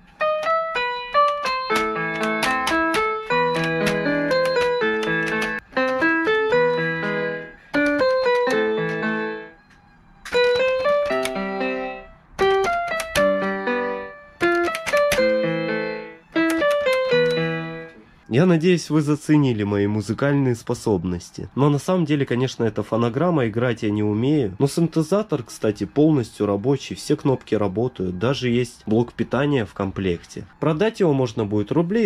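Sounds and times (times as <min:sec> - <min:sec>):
piano music: 0:00.0 - 0:18.9.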